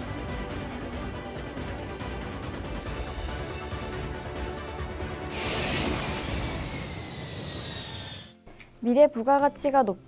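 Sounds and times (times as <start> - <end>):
whoosh with falling whine: 5.3 - 8.4.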